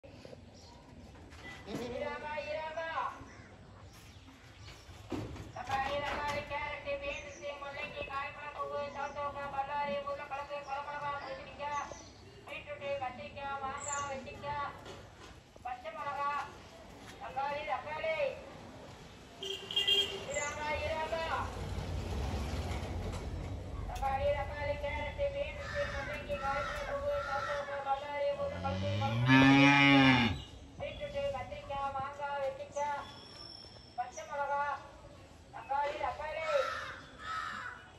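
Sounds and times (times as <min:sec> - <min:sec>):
person's voice: 0:23.9 - 0:28.7
cow mooing: 0:28.4 - 0:30.4.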